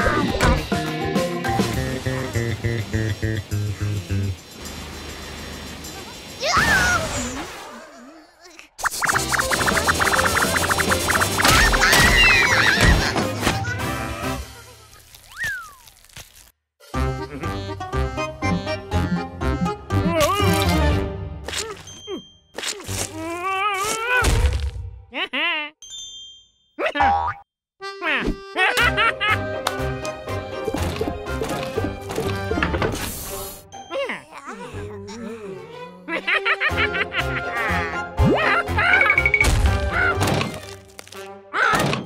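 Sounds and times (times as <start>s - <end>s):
comic music: 0.0s - 4.5s, 8.8s - 14.7s, 35.4s - 41.8s.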